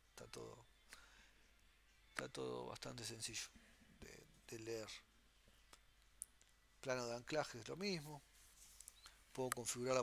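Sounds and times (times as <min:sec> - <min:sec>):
man speaking: 0:02.2 - 0:05.1, 0:06.8 - 0:08.3, 0:09.3 - 0:10.0.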